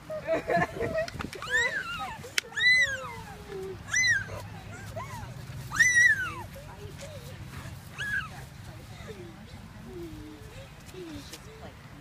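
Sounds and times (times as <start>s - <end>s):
puppy whining: 1.4s - 6.5s, 7.9s - 8.4s.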